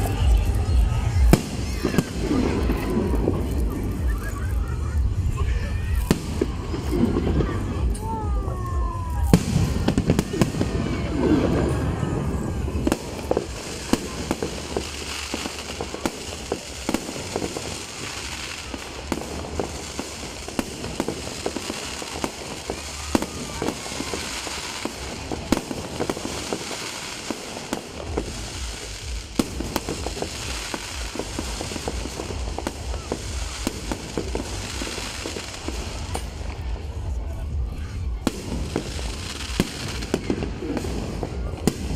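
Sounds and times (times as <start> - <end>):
fireworks bangs and crackles: 0.0 - 41.9.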